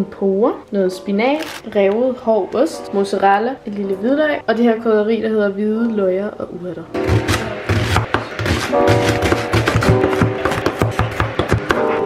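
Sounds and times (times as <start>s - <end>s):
background music: 0.0s - 12.0s
knife chopping on wooden board: 7.0s - 11.9s.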